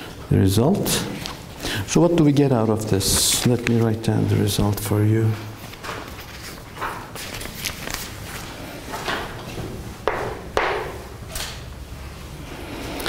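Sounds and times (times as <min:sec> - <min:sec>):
paper being handled: 0:02.3 - 0:09.2.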